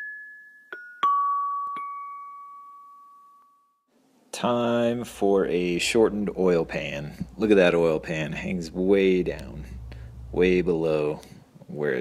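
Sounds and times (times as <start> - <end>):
bell-like chime note: 0.0 - 3.9.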